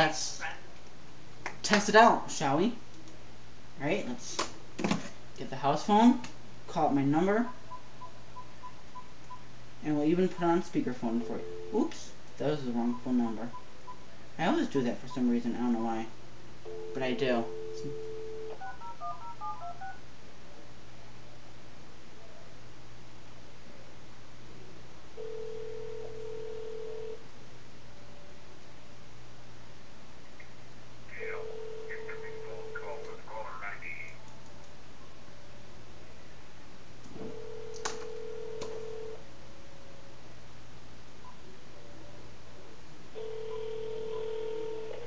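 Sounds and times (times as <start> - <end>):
telephone ringback tone: 11.3 - 11.8, 16.7 - 20.0, 25.2 - 27.2, 31.4 - 32.6, 37.3 - 39.2, 43.2 - 45.0
phone line hiss: 43.2 - 45.0.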